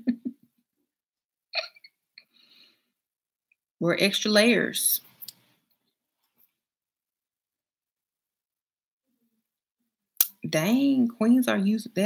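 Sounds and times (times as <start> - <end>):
woman giggling: 0.0 - 0.5, 1.6 - 1.9.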